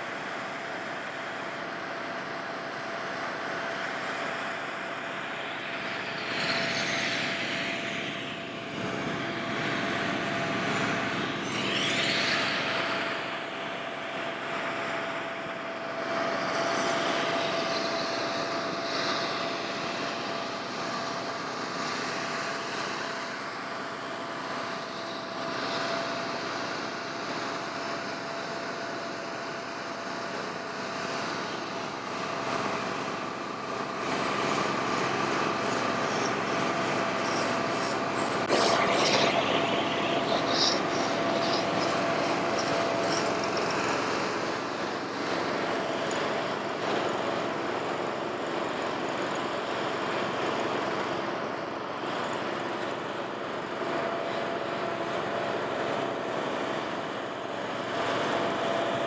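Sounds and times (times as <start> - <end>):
generator hum: 32.8 - 46.8.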